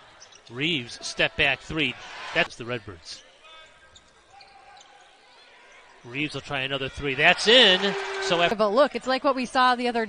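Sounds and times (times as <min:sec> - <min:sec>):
quiet arena background: 0:00.0 - 0:10.0.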